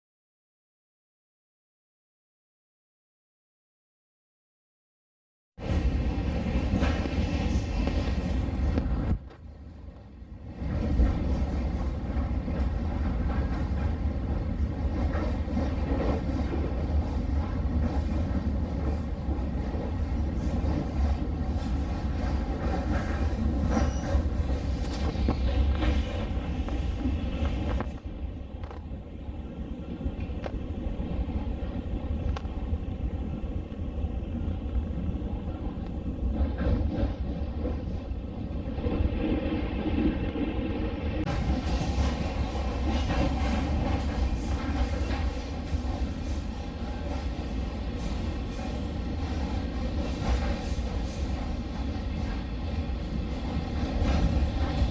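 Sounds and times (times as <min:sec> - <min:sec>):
train rumble inside passenger car: 0:05.6 - 0:54.9.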